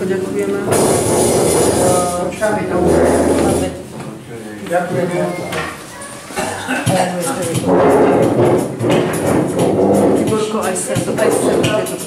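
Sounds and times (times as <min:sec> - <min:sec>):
many people talking: 0:00.0 - 0:12.0.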